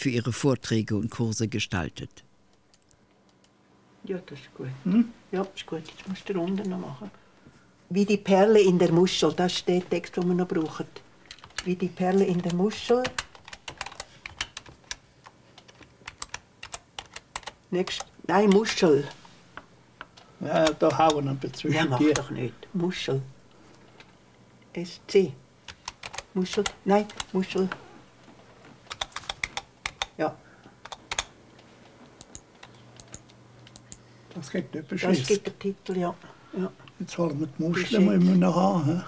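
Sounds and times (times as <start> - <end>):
typing on computer keyboard: 11.3 - 18.8, 25.6 - 27.3, 28.8 - 30.2, 30.8 - 31.4, 32.2 - 34.0.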